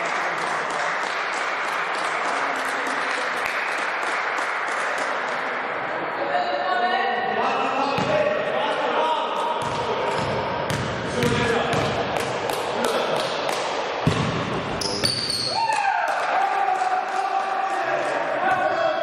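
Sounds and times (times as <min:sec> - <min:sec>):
players' voices: 0:05.0 - 0:19.0
basketball bouncing on wooden floor: 0:09.6 - 0:12.3, 0:14.0 - 0:15.3.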